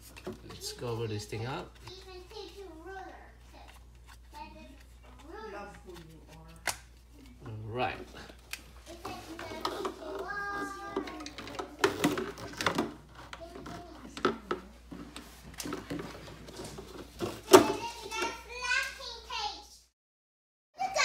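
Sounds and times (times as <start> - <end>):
child babbling and calling: 9.1 - 11.4.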